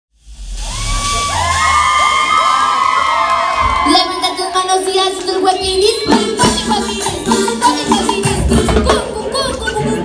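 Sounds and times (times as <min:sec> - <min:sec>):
crowd cheering and shouting: 0:00.3 - 0:06.1.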